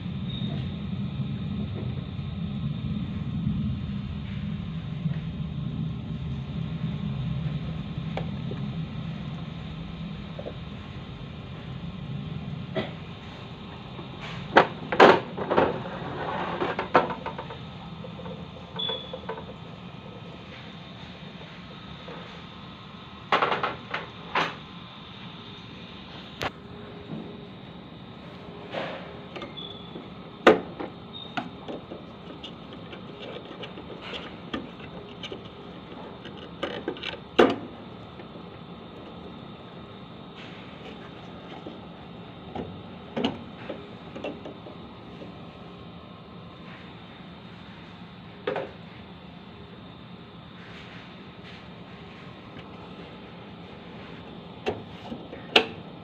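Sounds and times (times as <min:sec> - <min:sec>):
background hum: 0:00.0 - 0:56.0.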